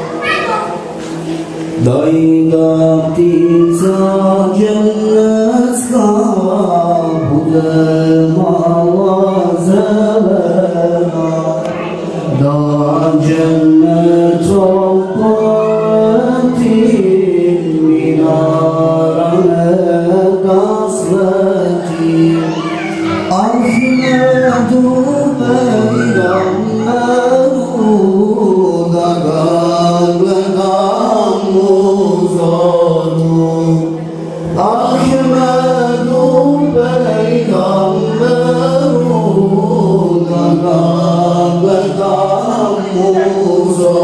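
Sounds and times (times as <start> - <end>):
man chanting a hymn: 1.4 - 44.0.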